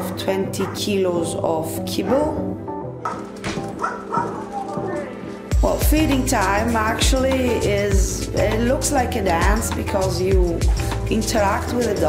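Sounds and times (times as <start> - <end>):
dogs barking: 0.0 - 5.5
background music: 0.0 - 12.0.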